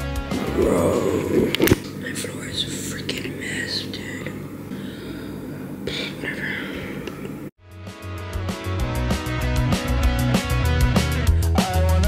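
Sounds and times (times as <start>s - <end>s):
girl whispering: 5.8s - 7.0s.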